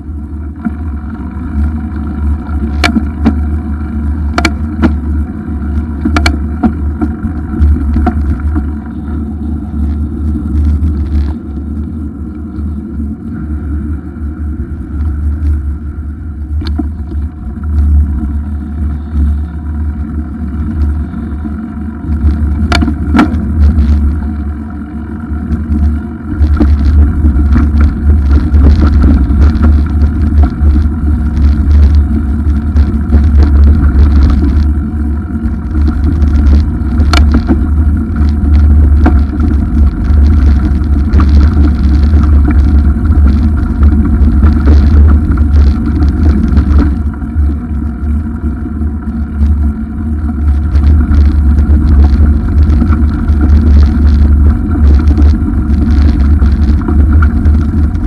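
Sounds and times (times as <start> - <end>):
bicycle knocks and rattles: 0.0 - 12.7, 16.4 - 58.0
wind noise on microphone: 0.0 - 58.0.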